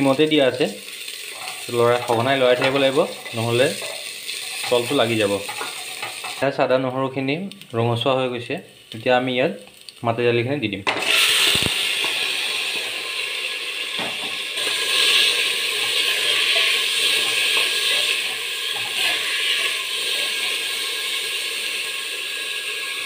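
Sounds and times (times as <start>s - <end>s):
lentils sizzling in hot oil: 0.0s - 23.0s.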